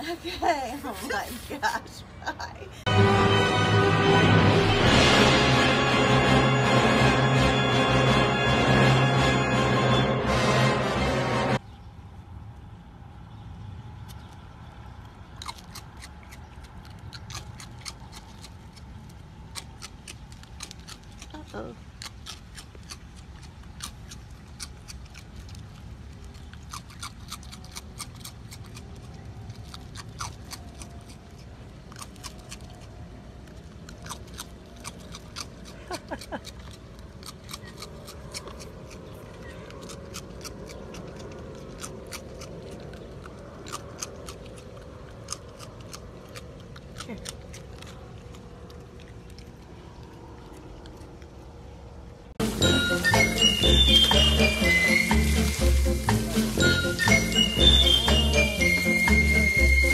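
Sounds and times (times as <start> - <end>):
raccoon crunching cereal: 14.1 - 59.9.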